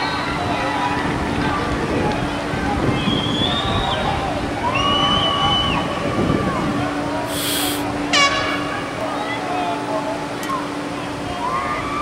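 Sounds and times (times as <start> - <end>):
brief high-pitched call: 7.3 - 7.8.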